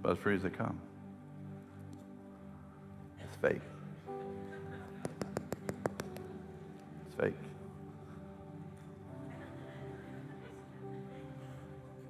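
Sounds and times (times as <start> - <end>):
soft background music pad: 0.0 - 12.0
hollow taps on fake fruit: 5.0 - 6.3.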